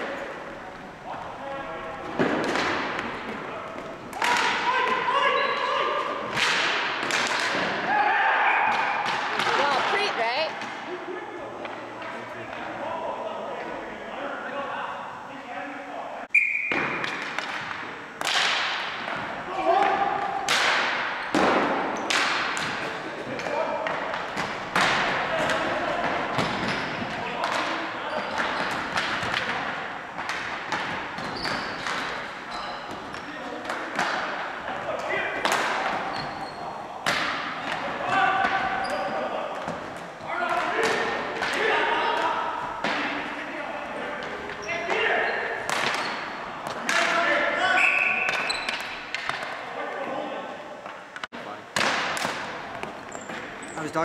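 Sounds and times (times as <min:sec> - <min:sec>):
hockey sticks clacking on ball: 0:02.0 - 0:07.8, 0:16.7 - 0:43.5, 0:44.2 - 0:50.1, 0:50.8 - 0:53.8
players shouting: 0:04.1 - 0:11.4, 0:40.2 - 0:48.4.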